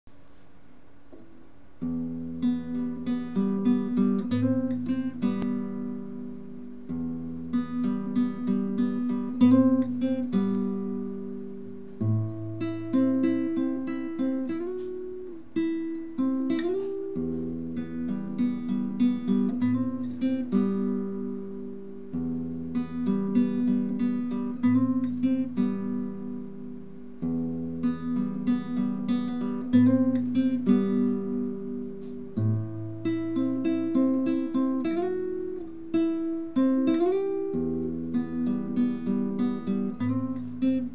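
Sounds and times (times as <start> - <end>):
fingerpicked classical guitar: 1.1 - 40.9.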